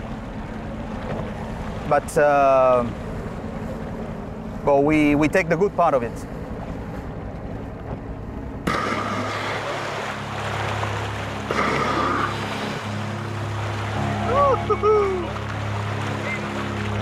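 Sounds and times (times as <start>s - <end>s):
boat engine running: 0.0s - 17.0s
water sloshing: 0.0s - 17.0s.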